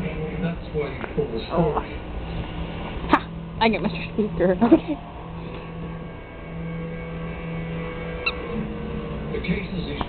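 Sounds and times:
steady low hum: 0:00.0 - 0:10.0
squeaky toy squeak: 0:08.2 - 0:08.5.

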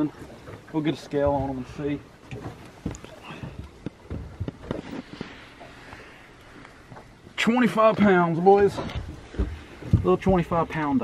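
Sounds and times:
light knocks and clicks: 0:02.3 - 0:05.3.

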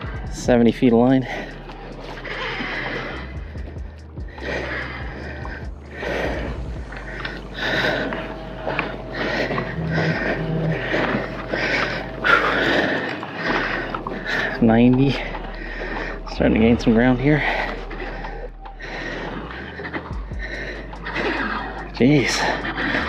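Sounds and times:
background music: 0:00.0 - 0:23.0.

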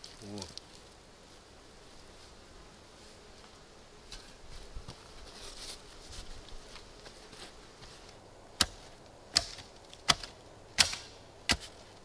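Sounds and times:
shovel striking ground: 0:08.6 - 0:11.8.

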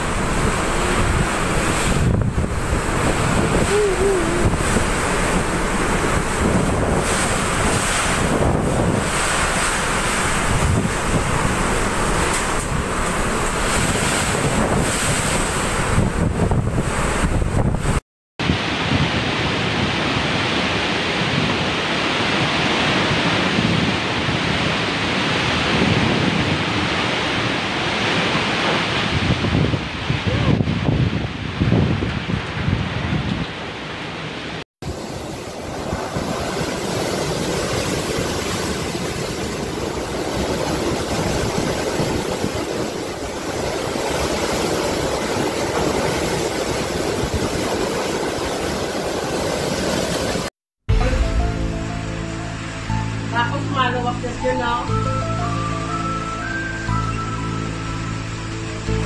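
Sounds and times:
storm wind: 0:00.0 - 0:55.2
heavy wind-driven rain: 0:00.0 - 0:59.0.

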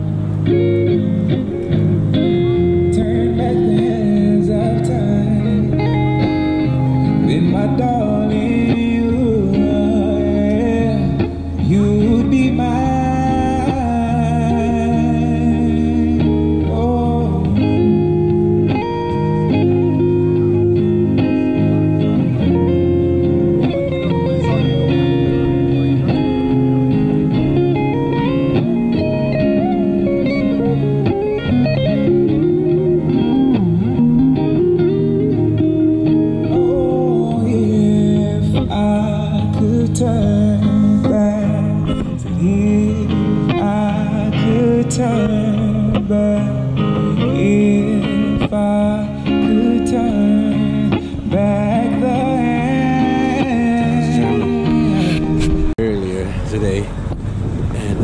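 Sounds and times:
electric guitar bending notes: 0:00.0 - 0:58.0
low bass notes: 0:00.0 - 0:58.0.

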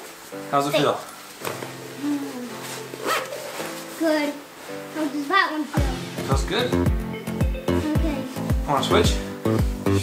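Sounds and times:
sleeping bag fabric rustling: 0:00.0 - 0:06.8
background music with steady chords: 0:00.0 - 0:10.0.

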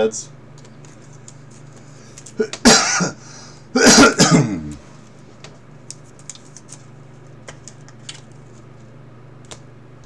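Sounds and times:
man coughing and clearing throat: 0:02.4 - 0:04.8.

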